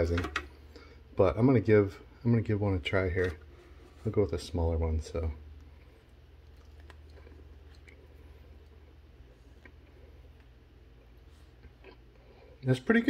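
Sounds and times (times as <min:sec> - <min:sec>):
low steady hum: 0:00.0 - 0:13.0
faint chewing: 0:05.5 - 0:12.6.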